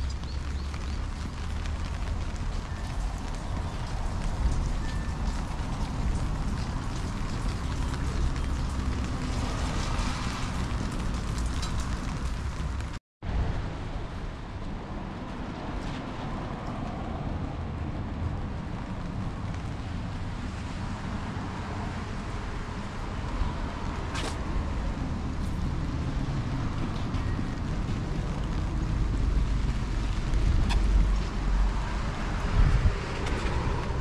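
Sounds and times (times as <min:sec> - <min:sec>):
rain on wet pavement: 0:00.0 - 0:34.0
wind rumbling on microphone: 0:00.0 - 0:34.0.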